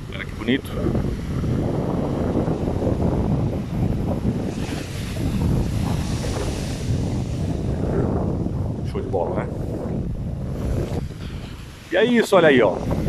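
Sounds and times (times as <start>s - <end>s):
ocean surf breaking on sand: 0.0s - 13.0s
wind buffeting microphone: 0.0s - 13.0s.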